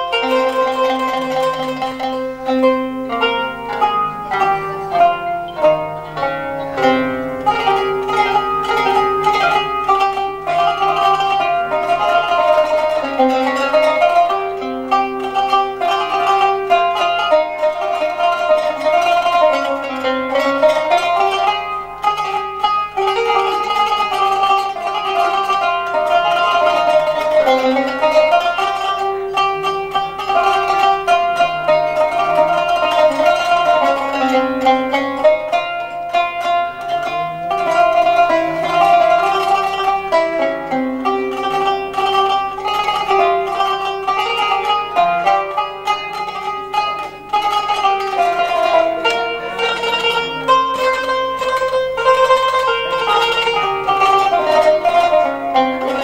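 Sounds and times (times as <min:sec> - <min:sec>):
plucked string melody: 0:00.0 - 0:56.0.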